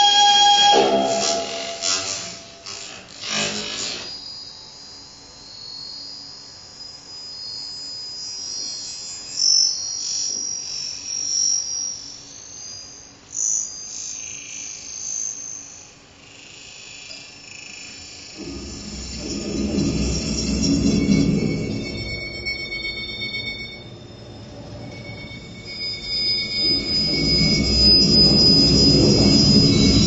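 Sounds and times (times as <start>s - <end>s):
high-pitched twittering electronic tones: 0.0s - 2.9s, 18.0s - 30.0s
low dense electronic drone: 18.4s - 30.0s.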